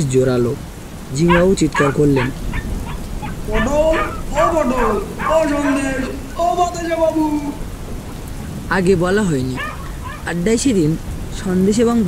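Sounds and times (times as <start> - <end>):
steady rain: 0.0 - 12.0
long voiced cry: 1.3 - 7.6.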